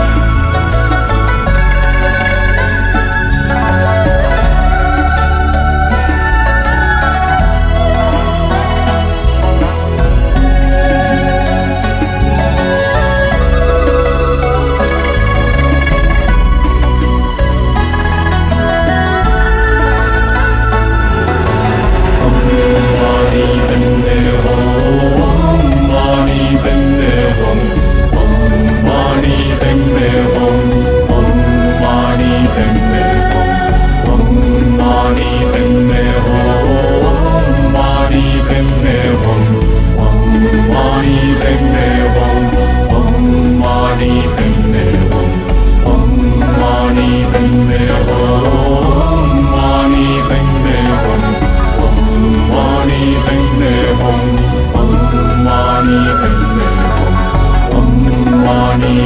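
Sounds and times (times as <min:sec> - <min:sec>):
instrumental backing: 0:00.0 - 0:59.0
steady low drone: 0:00.0 - 0:59.0
sustained melodic chant: 0:00.0 - 0:59.0.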